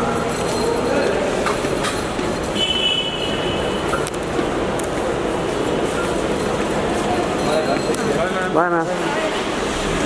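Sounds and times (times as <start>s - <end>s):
crowd hubbub: 0.0s - 10.0s.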